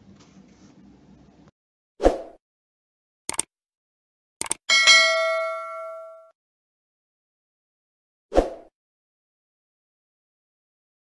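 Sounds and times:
double mouse click: 3.3s - 3.5s, 4.4s - 4.6s
bright bell ding: 4.7s - 6.3s.

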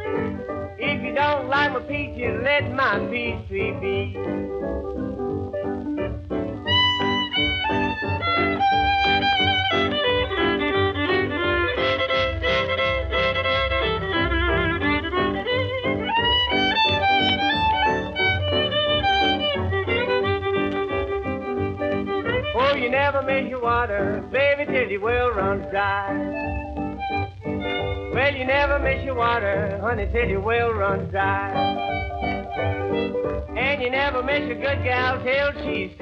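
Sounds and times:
country rhythm section: 0.0s - 36.0s
fiddle with vibrato: 6.6s - 24.1s, 25.3s - 36.0s.

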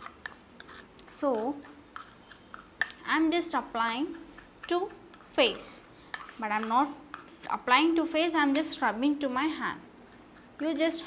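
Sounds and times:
metal spoon scraping ceramic bowl: 0.0s - 11.0s.

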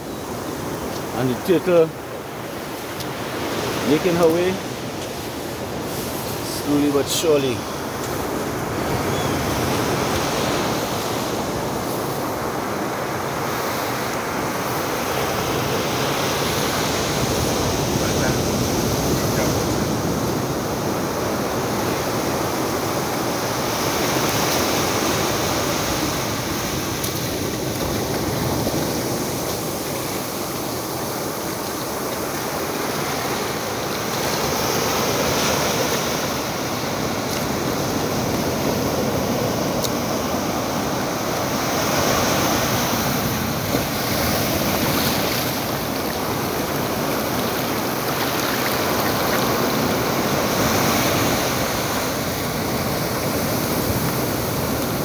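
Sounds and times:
ocean surf breaking on beach: 0.0s - 55.0s.

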